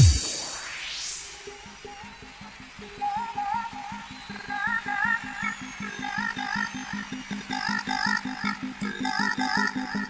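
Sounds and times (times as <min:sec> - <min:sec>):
electronic dance music: 0:00.0 - 0:01.4.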